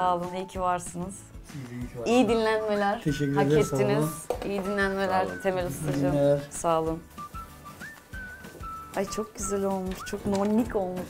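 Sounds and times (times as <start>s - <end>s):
whistled tune: 7.1s - 10.8s.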